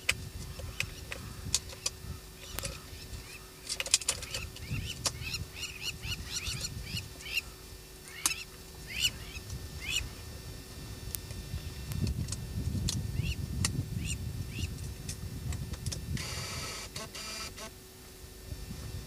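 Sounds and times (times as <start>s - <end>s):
birds chirping: 0.4s - 10.2s, 13.1s - 13.4s, 14.0s - 14.8s.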